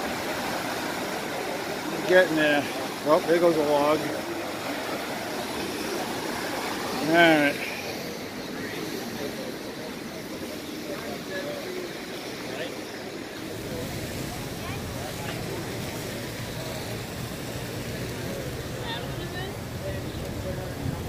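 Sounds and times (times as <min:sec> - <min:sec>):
faint voices: 0:00.0 - 0:21.0
street noise: 0:00.0 - 0:21.0.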